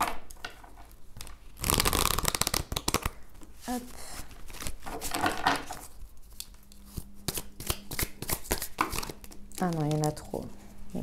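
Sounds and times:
cards being shuffled: 0:01.2 - 0:10.2.

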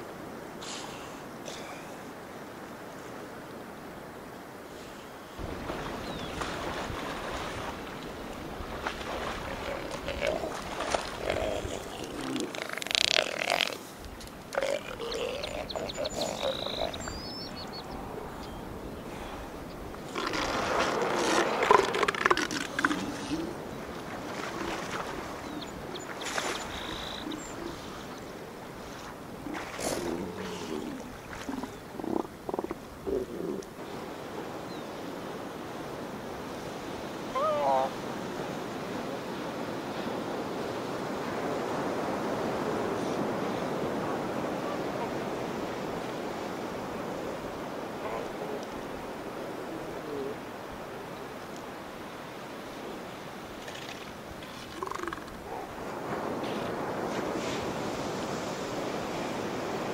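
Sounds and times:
steady surf: 0:00.0 - 0:32.0, 0:33.7 - 0:59.9
elephant seals calling: 0:09.3 - 0:13.9, 0:14.5 - 0:18.3, 0:20.0 - 0:28.3, 0:37.3 - 0:38.0, 0:54.6 - 0:55.8.

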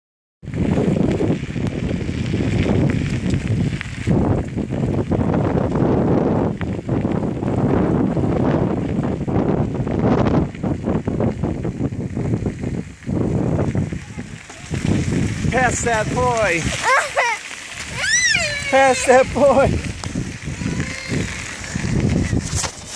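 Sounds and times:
bicycle tyres crunching on gravel: 0:00.4 - 0:22.9
wind buffeting microphone: 0:00.4 - 0:22.9.

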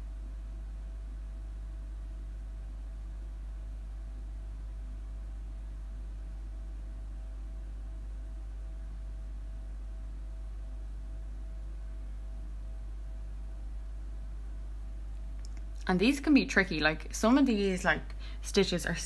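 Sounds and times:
faint hiss: 0:00.0 - 0:19.0
low background hum: 0:00.0 - 0:19.0.

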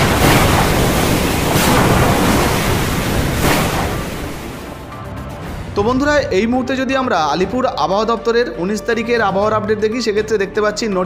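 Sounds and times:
surf: 0:00.0 - 0:04.9.

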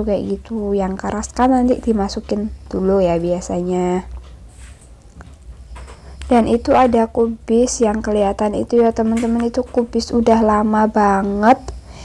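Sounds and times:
low hum with faint hiss: 0:00.0 - 0:12.0.

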